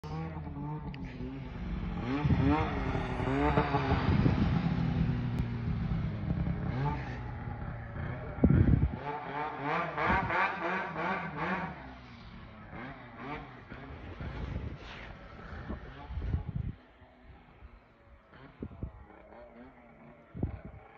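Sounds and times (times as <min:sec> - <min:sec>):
snowmobile engine revving: 0:00.0 - 0:20.9.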